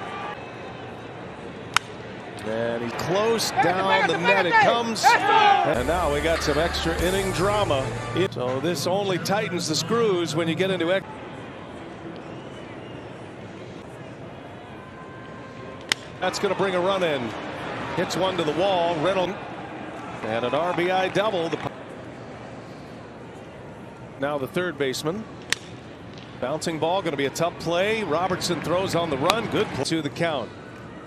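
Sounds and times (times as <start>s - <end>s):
ballpark background noise: 0.0s - 31.0s.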